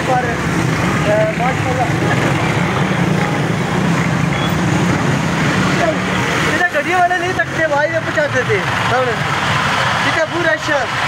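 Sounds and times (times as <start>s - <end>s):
motorcycle engine running: 0.0s - 10.2s
street voices: 0.0s - 11.0s.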